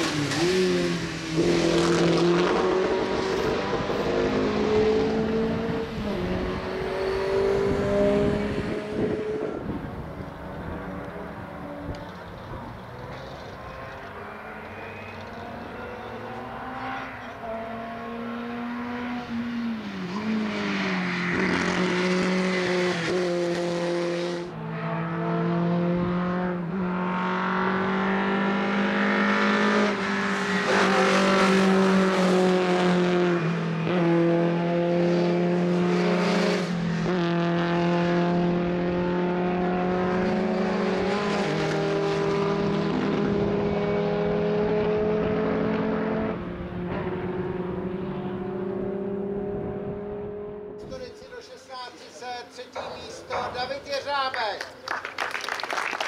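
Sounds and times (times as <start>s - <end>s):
race car engine at high revs: 0.0s - 51.0s.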